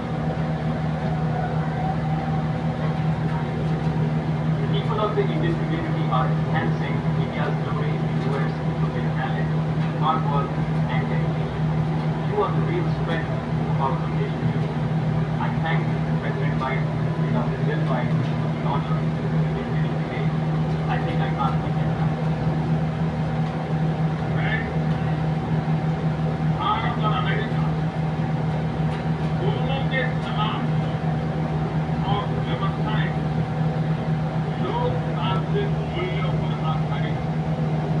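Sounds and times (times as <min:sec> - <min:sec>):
steady low hum: 0:00.0 - 0:38.0
voices calling out: 0:00.7 - 0:22.4.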